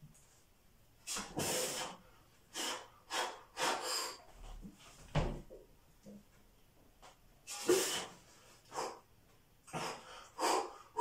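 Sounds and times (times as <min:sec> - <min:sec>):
man breathing hard: 0:01.2 - 0:04.4, 0:07.5 - 0:09.1, 0:09.7 - 0:11.0.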